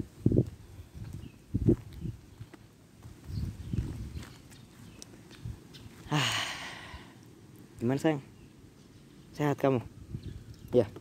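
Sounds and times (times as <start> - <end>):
sandal footsteps on pavement: 0.1 - 6.0.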